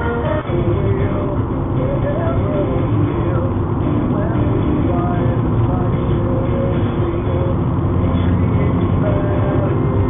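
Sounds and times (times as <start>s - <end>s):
car interior road and engine noise: 0.0s - 10.0s.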